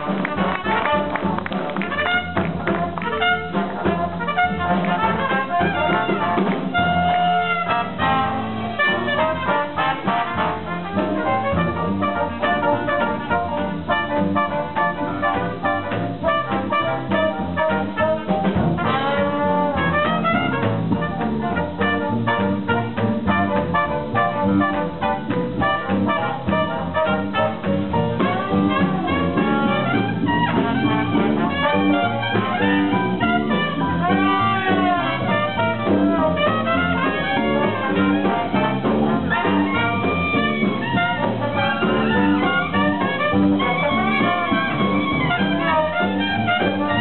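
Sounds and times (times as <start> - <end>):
clarinet: 0.0 - 47.0
drums: 0.0 - 47.0
trombone: 0.0 - 47.0
trumpet: 0.0 - 47.0
upright bass: 0.0 - 47.0.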